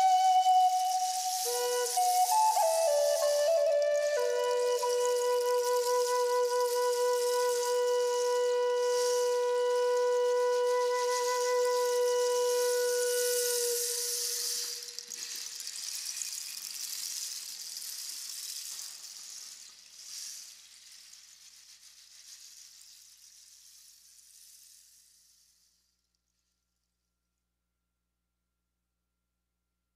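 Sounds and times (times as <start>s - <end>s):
long steady flute note: 0.0s - 15.1s
soft high hissing wash: 0.0s - 25.8s.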